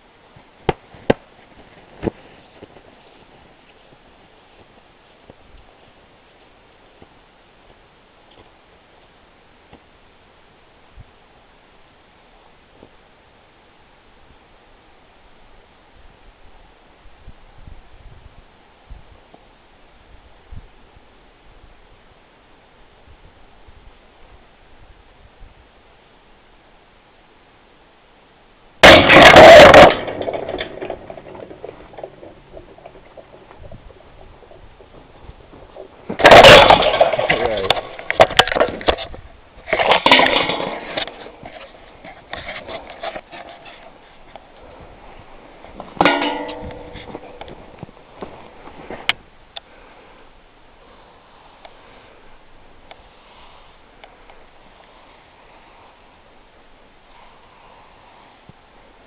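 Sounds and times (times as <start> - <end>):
faint steady hiss: 0.0 - 59.0.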